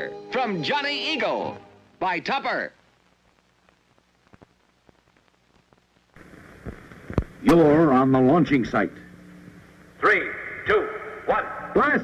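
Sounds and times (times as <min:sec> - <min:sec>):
faint low hum: 0:01.2 - 0:12.0.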